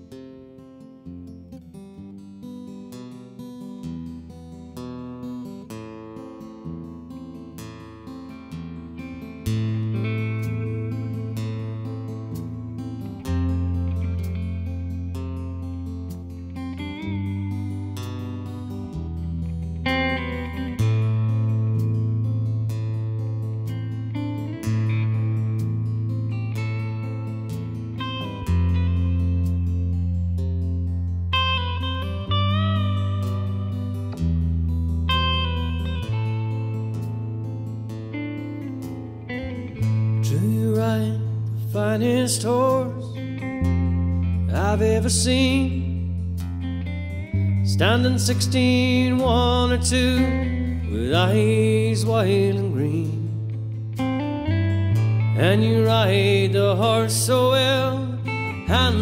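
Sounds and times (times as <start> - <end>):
acoustic guitar picking: 0.0 - 59.0.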